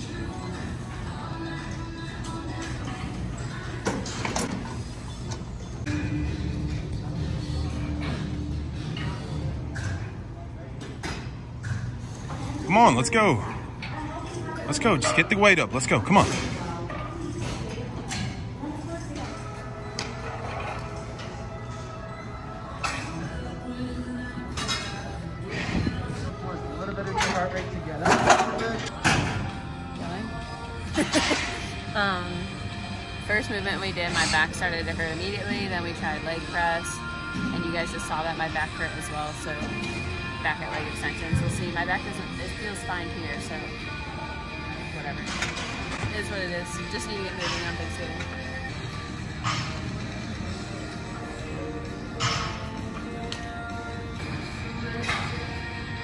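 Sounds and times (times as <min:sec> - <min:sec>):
background music: 0:00.0 - 0:56.0.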